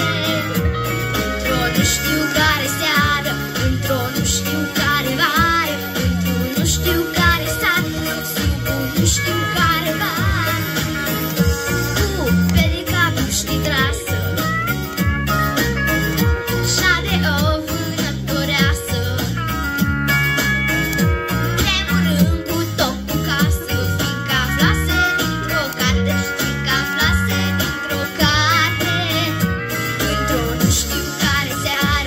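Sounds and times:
girl singing into microphone: 0.0 - 0.7, 1.4 - 10.9, 12.0 - 14.4, 16.5 - 19.3, 21.6 - 32.0
pop backing track over loudspeaker: 0.0 - 32.0.

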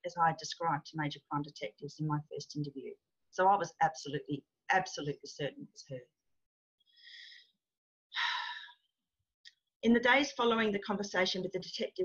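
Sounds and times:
woman speaking: 0.0 - 6.1, 9.8 - 12.0.

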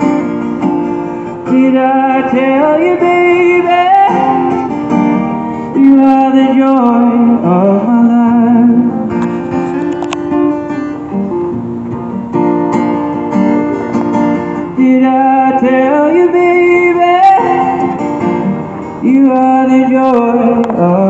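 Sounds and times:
acoustic guitar folk song: 0.0 - 21.0.

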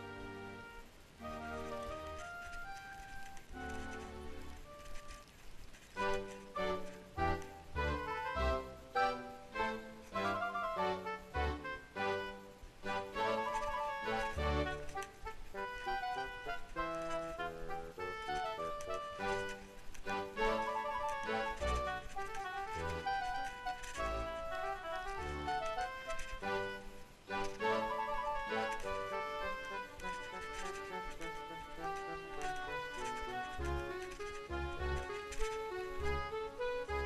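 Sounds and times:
instrumental music with bass: 6.0 - 37.0.

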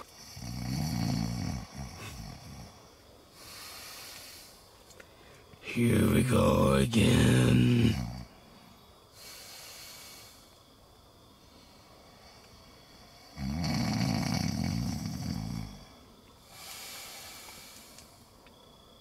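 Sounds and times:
man snoring: 0.1 - 2.8, 5.7 - 8.3, 13.1 - 17.9
soft breath out: 16.4 - 18.2.

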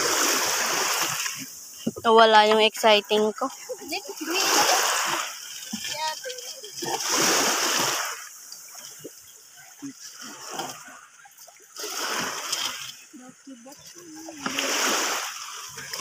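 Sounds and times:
water splashing: 0.0 - 16.0.

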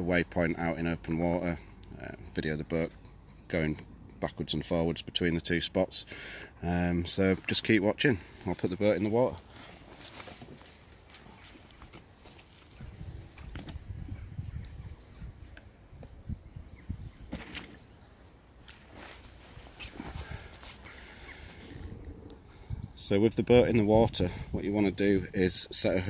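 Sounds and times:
footsteps on stones: 9.8 - 12.8.

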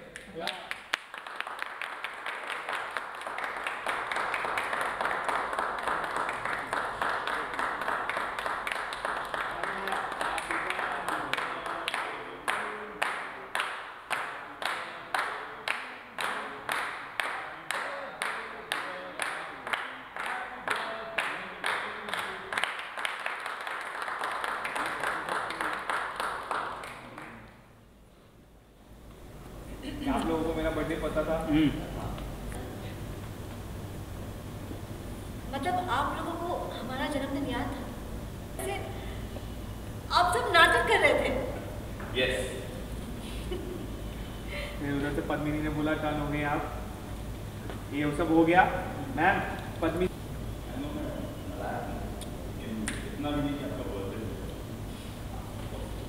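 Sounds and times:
people applauding: 0.0 - 27.5
unison clapping: 0.0 - 27.6.

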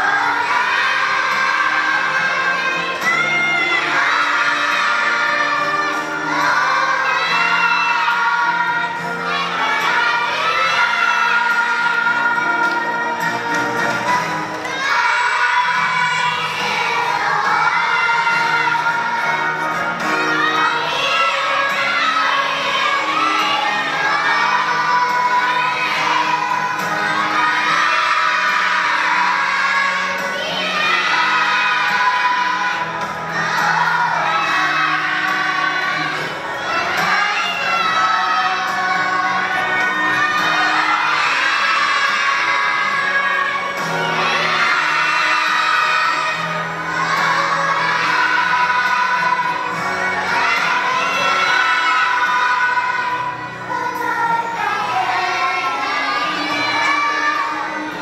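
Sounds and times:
accompaniment music: 0.0 - 58.0
children singing together: 0.0 - 58.0.

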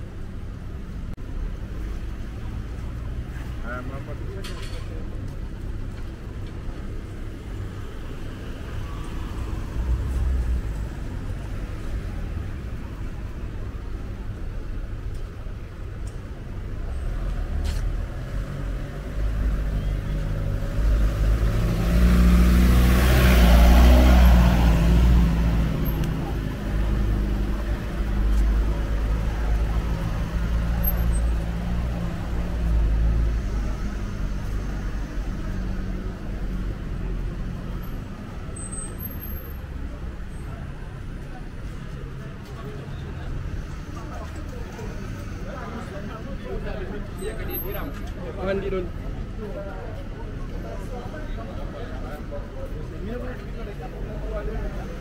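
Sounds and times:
car engines running slowly: 0.0 - 55.0
vehicle passing close: 20.3 - 36.1.

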